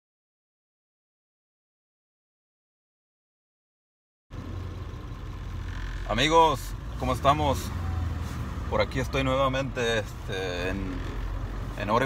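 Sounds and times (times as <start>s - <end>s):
engine and road noise rumble: 4.3s - 12.0s.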